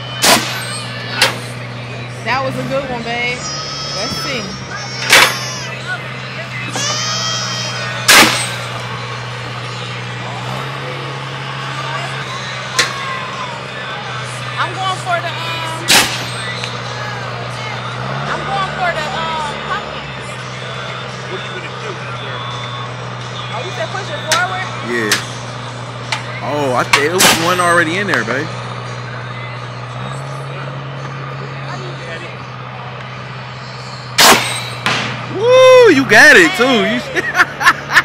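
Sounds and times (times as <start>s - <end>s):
air cannon blasts: 34.2s - 35.2s.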